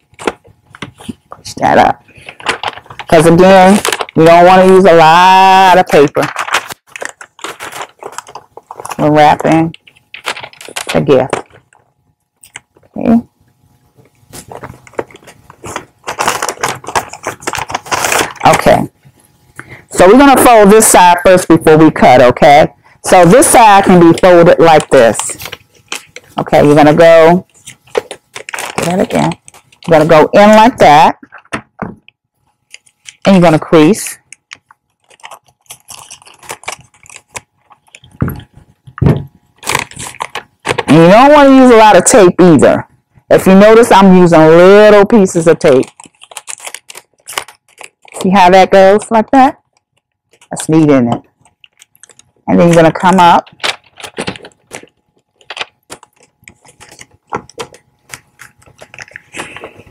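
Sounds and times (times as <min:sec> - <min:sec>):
wrapping paper crinkling: 0:00.0 - 0:12.9, 0:13.8 - 0:19.5, 0:23.2 - 0:31.6, 0:32.4 - 0:41.7, 0:44.7 - 0:59.9.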